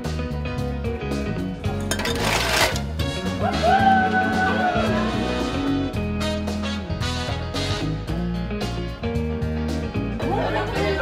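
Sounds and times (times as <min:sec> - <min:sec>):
background music with steady beat: 0:02.8 - 0:11.0.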